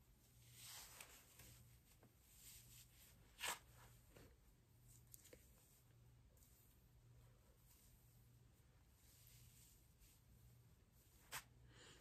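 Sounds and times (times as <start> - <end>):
wig rustling: 0.1 - 11.6.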